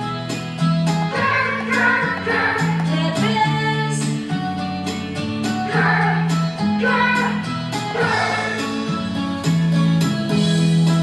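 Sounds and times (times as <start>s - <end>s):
voices singing: 1.0s - 4.0s, 5.6s - 9.0s.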